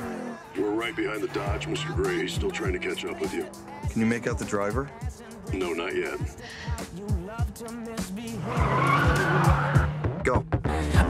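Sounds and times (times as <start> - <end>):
tyres squealing: 0.0 - 10.1
hip-hop music with bass beat: 0.0 - 11.0
sports car engine revving: 0.0 - 11.0.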